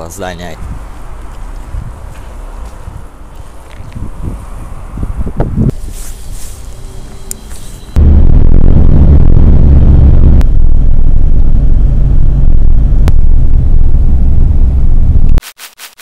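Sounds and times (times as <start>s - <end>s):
road vehicle rumble: 0.0s - 15.4s.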